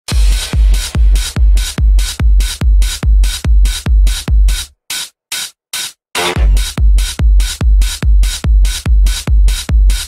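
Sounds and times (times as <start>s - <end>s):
pounding kick drum: 0.1s - 4.7s, 6.2s - 10.0s
pumping dance music: 0.1s - 4.7s, 6.2s - 10.0s.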